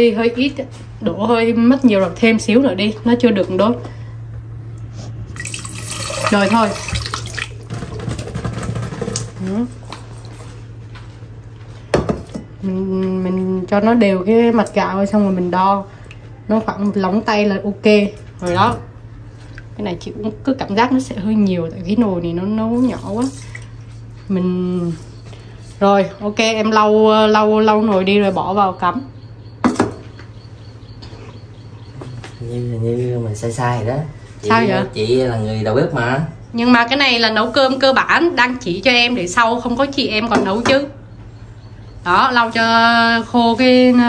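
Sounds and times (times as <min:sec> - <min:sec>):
water running into a pot: 0:05.3 - 0:09.3, 0:22.8 - 0:23.7
metal pot clunking on stone countertop: 0:29.6 - 0:30.1.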